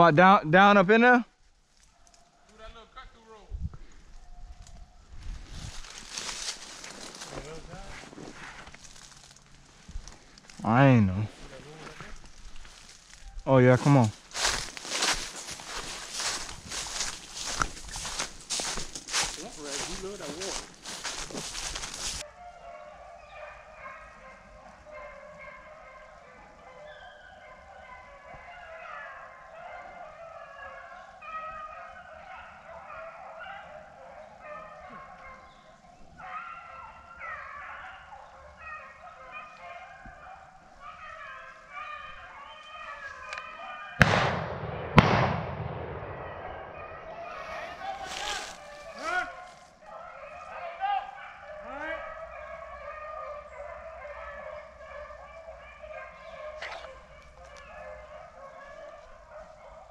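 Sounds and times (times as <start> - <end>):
footsteps crunching dry leaves: 5.3 - 10.6, 11.3 - 22.2, 47.2 - 49.8
beagles baying: 13.4 - 59.9
shotgun shots: 44.0 - 46.8.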